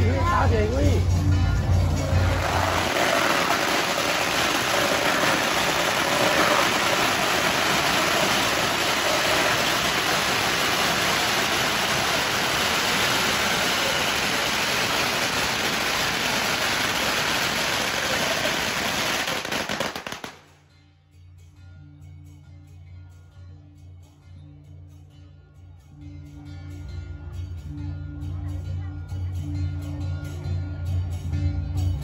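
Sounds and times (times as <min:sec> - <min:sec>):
firecrackers crackling: 0:01.6 - 0:20.6.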